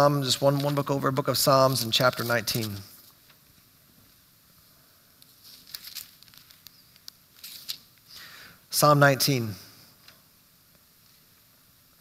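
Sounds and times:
thin pages rustling: 1.7s - 3.4s, 5.2s - 8.0s.

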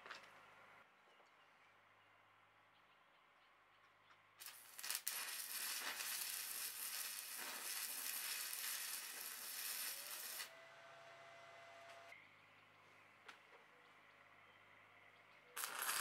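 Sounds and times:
arc welding sizzling and crackling: 4.4s - 10.6s, 15.6s - 16.0s.

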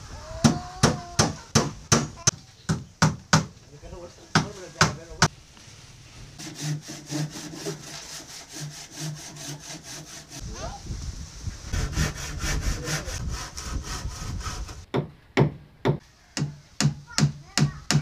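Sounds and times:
hand tool strokes on wood: 5.6s - 10.4s, 11.7s - 14.8s.

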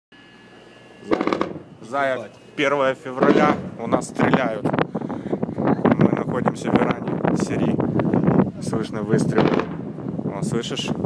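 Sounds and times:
faint steady hum: 0.2s - 6.0s
man speaking: 1.8s - 4.8s.

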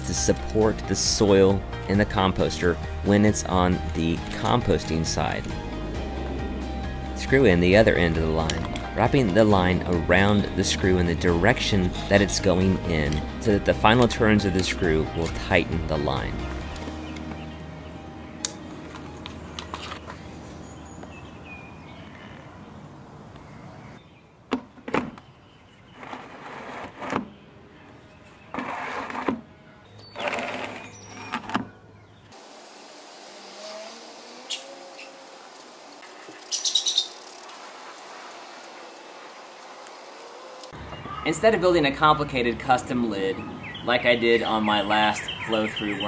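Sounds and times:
soft background music: 0.0s - 21.2s
faint bird chirps: 36.3s - 37.3s.

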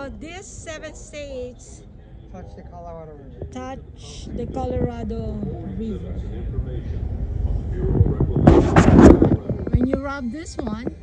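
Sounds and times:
wind buffeting microphone: 3.3s - 11.0s.

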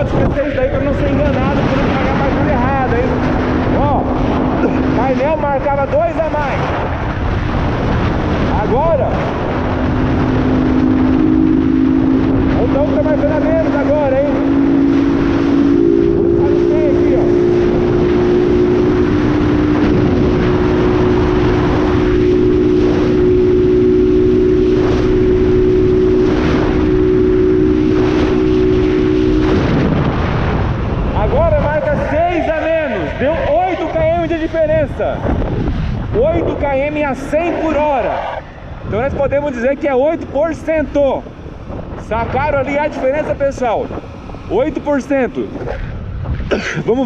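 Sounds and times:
motorcycle engine cruising: 0.0s - 47.0s
wind rushing: 0.0s - 47.0s.

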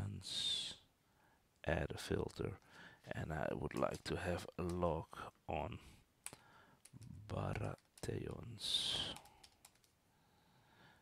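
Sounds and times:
computer keyboard keystrokes: 6.2s - 8.2s, 9.1s - 10.0s.

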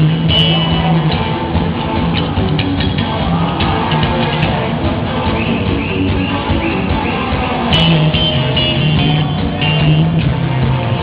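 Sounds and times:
heavy metal band playing live: 0.0s - 11.0s
low held guitar riff: 0.0s - 11.0s.

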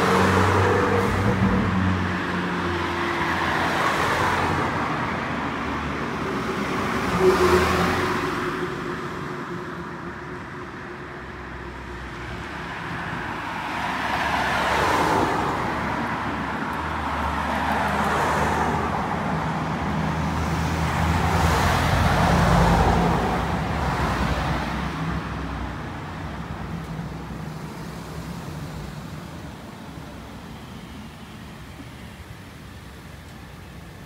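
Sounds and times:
cars passing: 0.0s - 34.0s
vehicle engine hum: 0.0s - 34.0s.

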